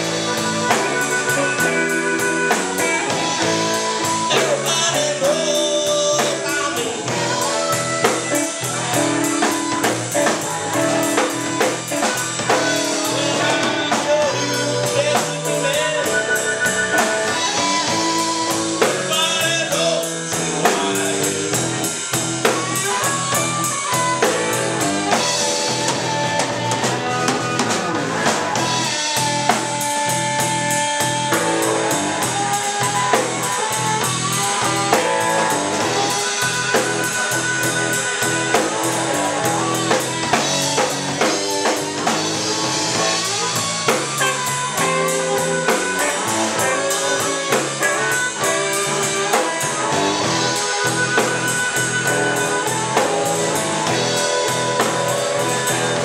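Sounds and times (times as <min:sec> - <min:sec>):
drum kit: 0:00.0 - 0:56.0
electric bass: 0:00.0 - 0:56.0
electric guitar: 0:00.0 - 0:56.0.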